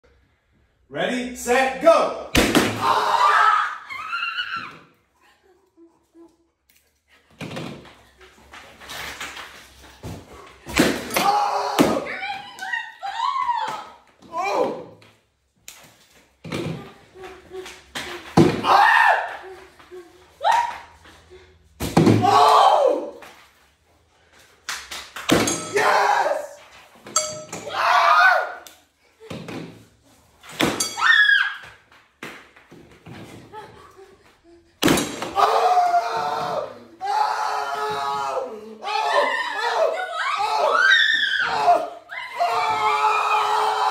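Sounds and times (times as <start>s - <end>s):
excited shouting: 11.1s - 14.9s, 18.6s - 19.6s, 25.7s - 26.6s, 35.3s - 43.9s.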